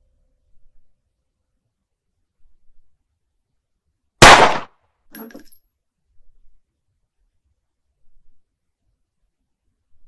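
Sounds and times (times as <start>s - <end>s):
handgun gunshot: 4.2s - 4.7s.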